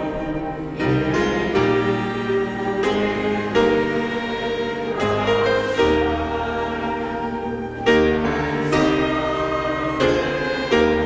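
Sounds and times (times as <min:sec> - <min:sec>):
congregation singing a hymn: 0:00.0 - 0:11.0
sustained instrumental accompaniment: 0:00.0 - 0:11.0.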